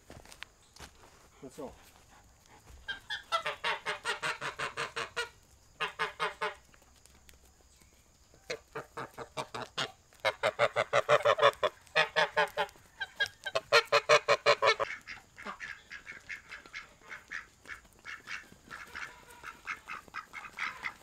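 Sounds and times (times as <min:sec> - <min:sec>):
ducks quacking: 0:02.8 - 0:06.6, 0:08.5 - 0:21.0
geese honking: 0:02.9 - 0:06.6, 0:08.5 - 0:21.0.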